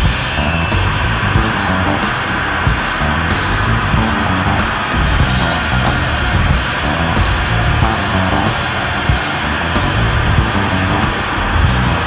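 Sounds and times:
bass: 0.0s - 12.0s
distorted electric guitar: 0.0s - 12.0s
drums: 0.0s - 12.0s.

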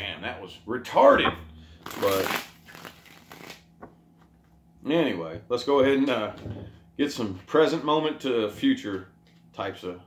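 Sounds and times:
cards riffle shuffling: 1.8s - 4.0s.

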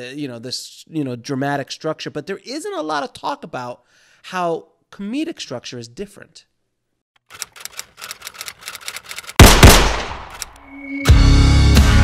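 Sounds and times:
typewriter-like clacking: 7.3s - 9.4s
loud gunshots: 9.4s - 10.4s.

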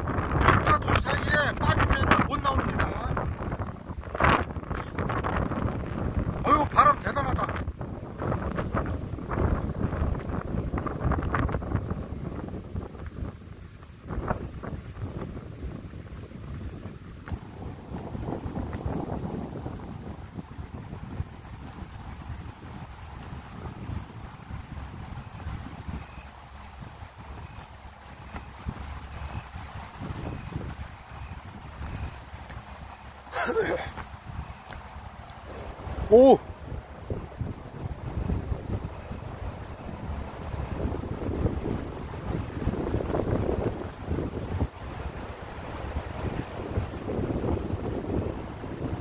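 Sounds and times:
strong wind buffeting microphone: 0.0s - 49.0s.

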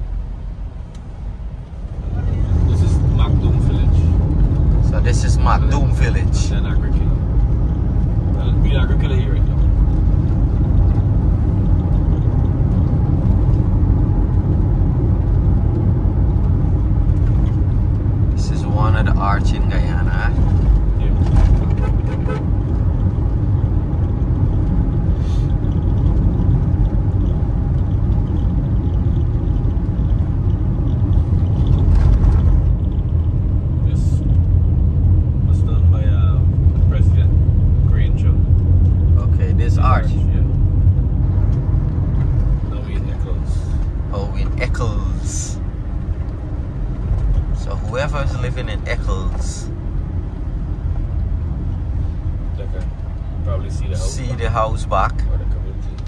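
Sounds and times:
car road and engine rumble: 0.0s - 56.0s.

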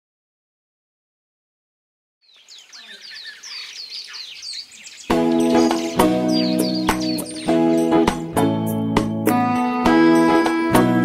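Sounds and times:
birds chirping: 2.2s - 9.2s.

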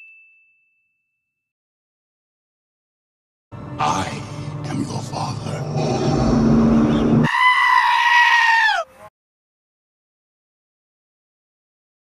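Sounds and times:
high-pitched animal bleat: 7.2s - 8.9s.

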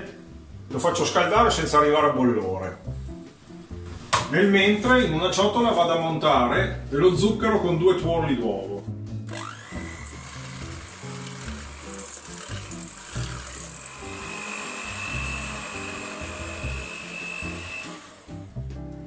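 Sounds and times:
electric hand mixer whine: 9.3s - 18.6s.

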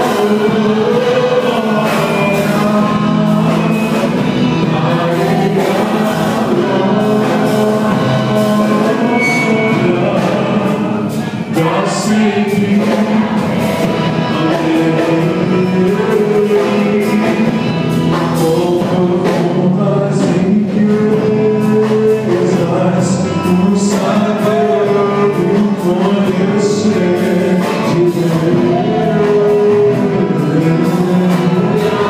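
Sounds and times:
congregation singing worship song: 0.0s - 32.0s.

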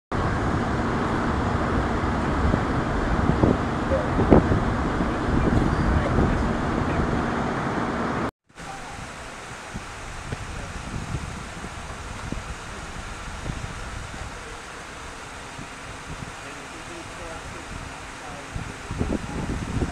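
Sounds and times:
wind hiss: 0.2s - 19.9s.

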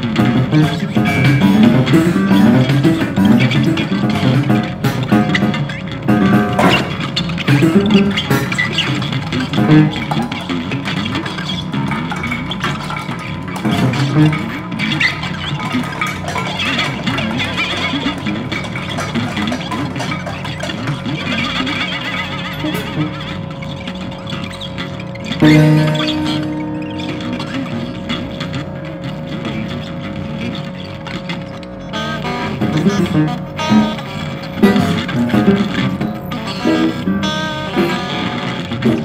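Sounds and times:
noisy guitar and electronics: 0.0s - 39.0s
steady held tones: 0.0s - 39.0s
clicks and rattles: 0.1s - 39.0s.

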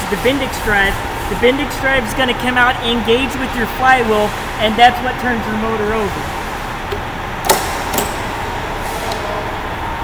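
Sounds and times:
shop hum: 0.0s - 10.0s.

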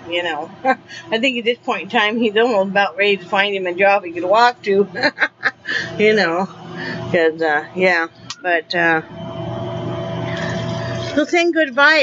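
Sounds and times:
person talking: 0.0s - 9.0s, 10.4s - 12.0s
steady mechanical hum: 0.0s - 12.0s.

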